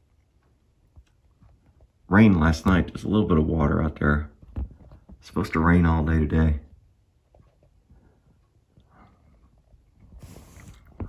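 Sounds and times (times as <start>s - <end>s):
phone rustling hiss: 10.0s - 11.0s.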